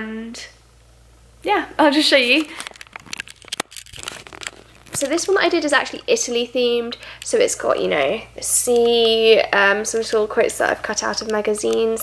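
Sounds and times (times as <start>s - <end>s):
paper rustling and crinkling: 2.3s - 6.0s.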